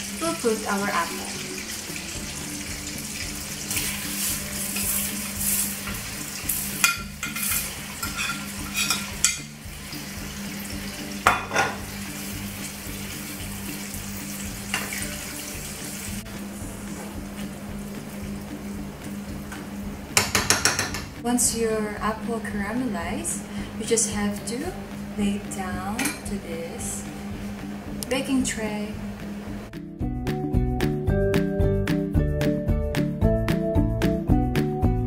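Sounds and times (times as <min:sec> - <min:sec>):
caramel bubbling and sizzling in pan: 0:00.0 - 0:20.8
spoon scraping against pan: 0:04.0 - 0:09.5.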